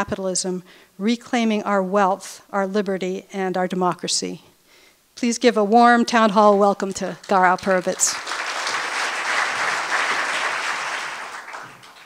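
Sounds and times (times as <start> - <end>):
audience applauding: 7.8 - 12.0.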